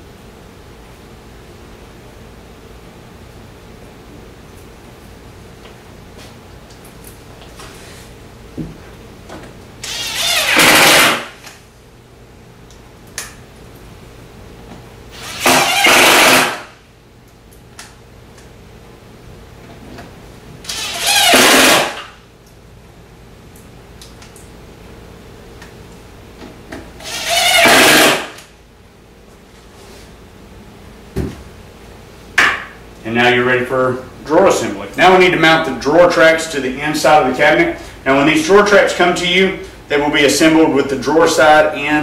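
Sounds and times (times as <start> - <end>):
power driver driving screws: 9.8 - 11.3, 15.2 - 16.7, 20.7 - 22.1, 27.0 - 28.4.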